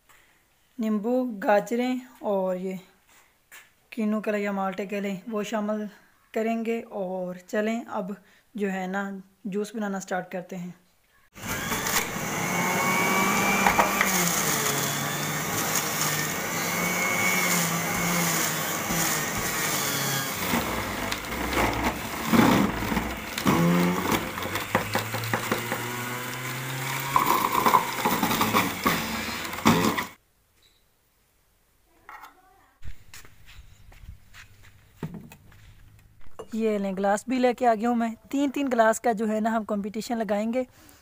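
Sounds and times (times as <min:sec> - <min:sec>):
juice extractor grinding: 0:11.4 - 0:30.2.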